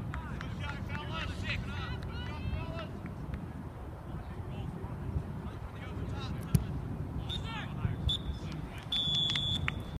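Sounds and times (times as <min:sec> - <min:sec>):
wind rumble on microphone: 0:00.0 - 0:10.0
referee's whistle: 0:07.3 - 0:09.9.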